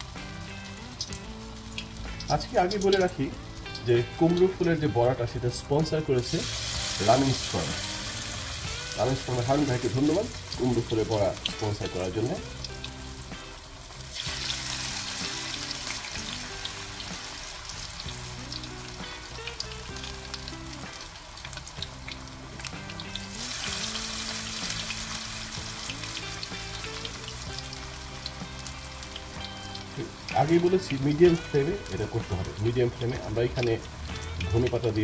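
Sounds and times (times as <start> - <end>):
food sizzling in hot oil: 0.0 - 35.0.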